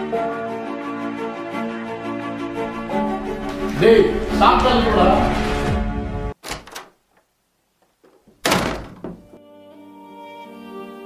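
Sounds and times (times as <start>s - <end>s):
slow background music: 0.0s - 6.3s, 9.4s - 11.0s
door slamming shut: 6.4s - 6.9s, 8.3s - 9.4s.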